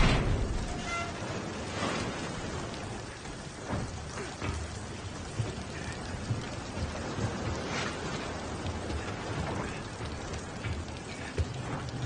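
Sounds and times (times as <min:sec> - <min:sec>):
heavy rain hiss: 0:00.0 - 0:12.0
low thunder rumbles: 0:00.0 - 0:12.0.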